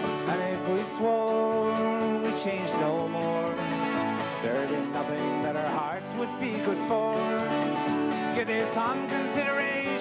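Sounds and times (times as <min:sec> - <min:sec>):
instrumental melody line: 0:00.0 - 0:10.0
lead vocal singing: 0:00.0 - 0:10.0
strummed acoustic guitar: 0:00.0 - 0:10.0.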